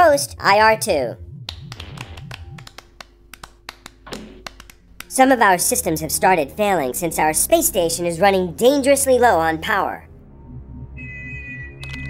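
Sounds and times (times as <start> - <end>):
low pulsing tone: 0.3 - 3.3, 4.2 - 12.0
sharp irregular clicks and taps: 1.5 - 5.2.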